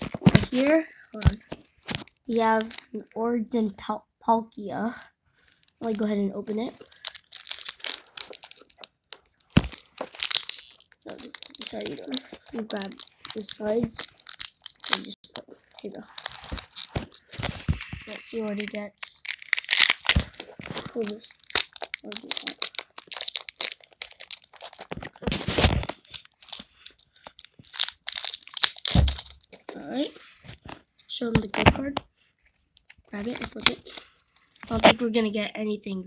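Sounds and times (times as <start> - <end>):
foil wrapper crinkling: 5.4 - 29.6.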